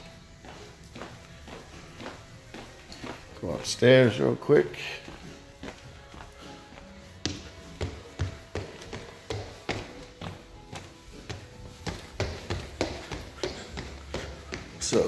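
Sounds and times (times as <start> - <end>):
footsteps climbing stairs: 0.0 - 4.2, 5.0 - 15.0
quiet background music: 0.0 - 15.0.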